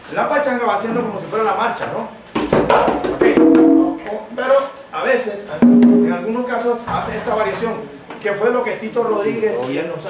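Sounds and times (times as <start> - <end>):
drum head ringing: 2.6 - 4.1, 5.6 - 7.1.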